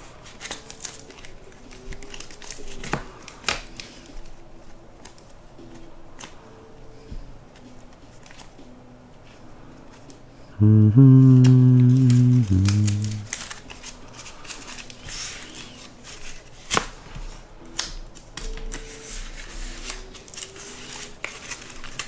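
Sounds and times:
plastic card sleeves rustling: 0:11.2 - 0:16.9, 0:18.6 - 0:22.0.

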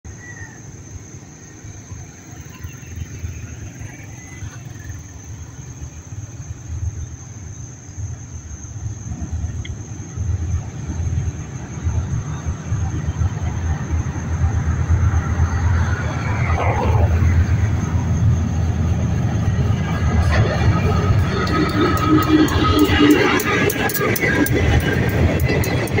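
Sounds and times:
train approaching with low rumble: 0:00.1 - 0:26.0.

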